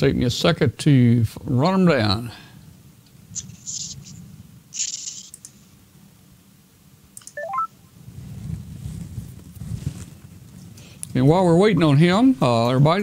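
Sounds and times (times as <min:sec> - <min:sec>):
short electronic beeps rising: 0:07.4 - 0:07.8.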